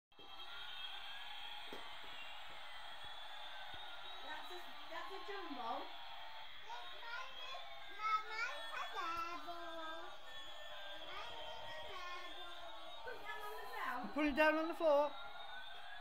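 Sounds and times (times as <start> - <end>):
toy synthetic siren whine: 6.5 - 16.0
children's voices: 6.7 - 10.2, 11.0 - 13.8.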